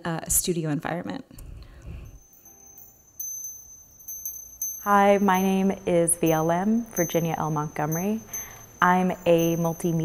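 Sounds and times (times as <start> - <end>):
small metal bells tinkling: 2.0 - 10.0
woman speaking: 4.8 - 10.0.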